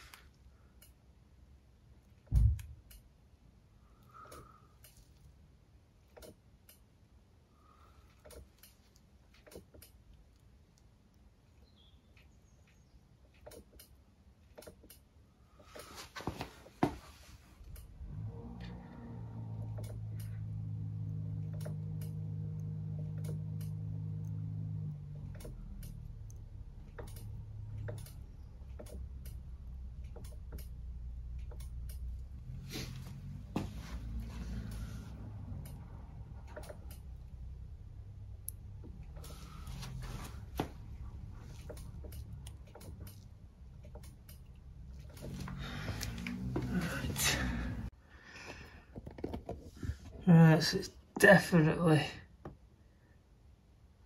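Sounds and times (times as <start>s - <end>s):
heavy low thump: 2.3s - 2.8s.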